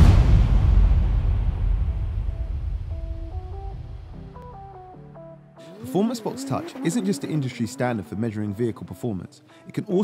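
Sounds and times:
deep rumbling whoosh: 0.0s - 4.4s.

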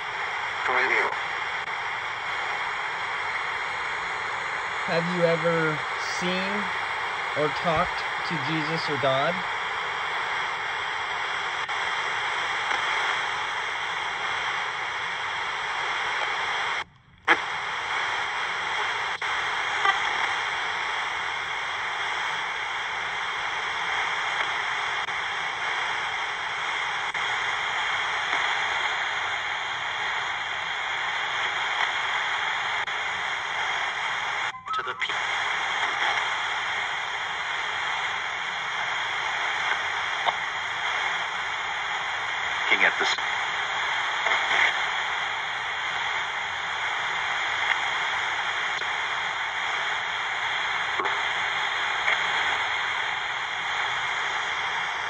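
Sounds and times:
radio static hiss: 0.0s - 55.0s
radio click: 5.4s - 14.1s, 26.7s - 44.9s, 47.4s - 54.4s.

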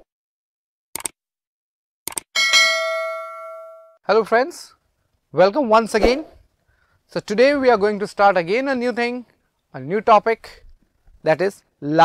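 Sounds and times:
notification bell ding: 2.4s - 4.0s.

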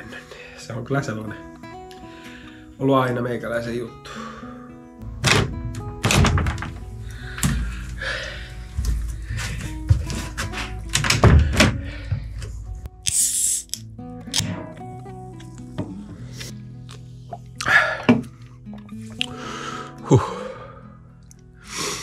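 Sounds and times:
background music with held notes: 0.0s - 22.0s.

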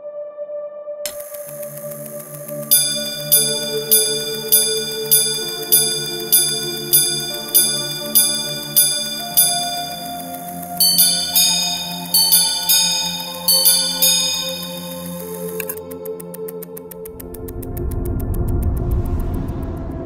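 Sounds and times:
watch gong chimes: 1.1s - 15.8s
soft music bed: 1.1s - 19.4s.

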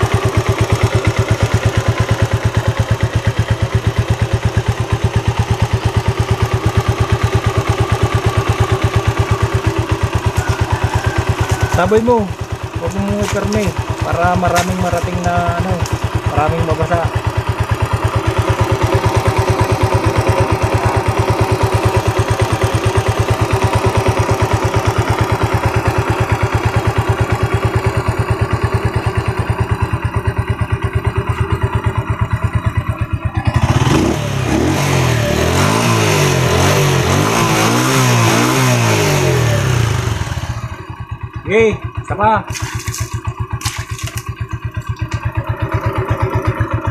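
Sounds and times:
motorcycle engine idling and revving: 0.0s - 46.9s.

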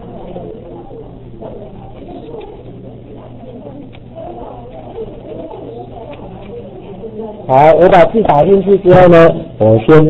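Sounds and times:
faint wavering murmur: 0.0s - 10.0s.

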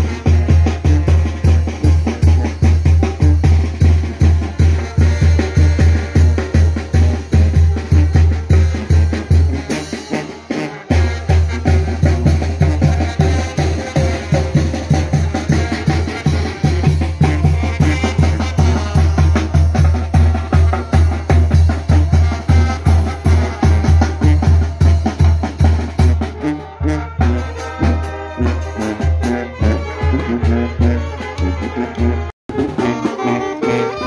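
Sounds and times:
bass drum and snare beat: 0.0s - 34.0s
saxophones and trombones: 0.0s - 34.0s.

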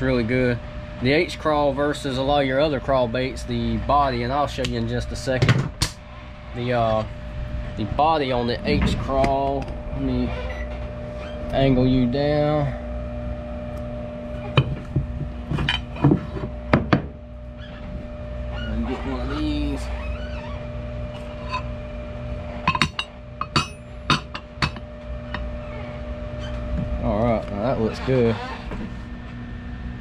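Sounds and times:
steady hum: 0.0s - 30.0s.

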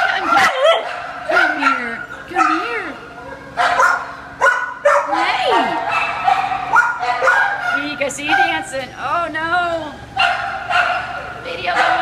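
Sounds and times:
dog yipping and barking: 0.0s - 8.6s, 10.2s - 12.0s.

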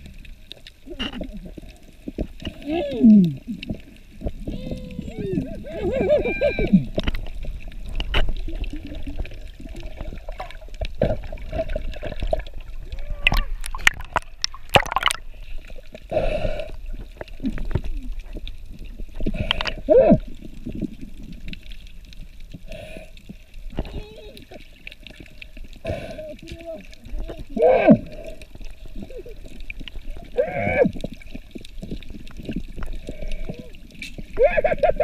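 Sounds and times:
muffled voices underwater: 0.0s - 35.0s
water sloshing and gurgling: 0.0s - 35.0s.

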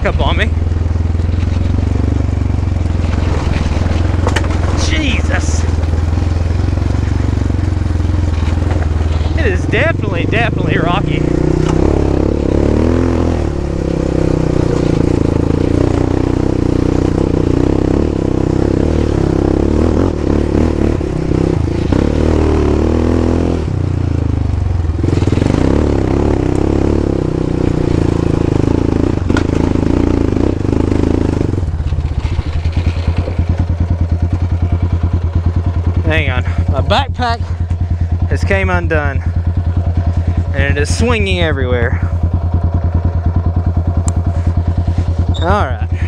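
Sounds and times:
quad engine running: 0.0s - 46.0s
quad rattling over rocks: 0.5s - 10.8s, 31.5s - 34.8s.

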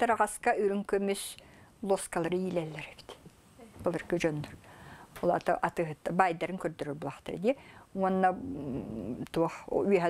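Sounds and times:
woman speaking: 0.0s - 4.6s, 5.2s - 10.0s.

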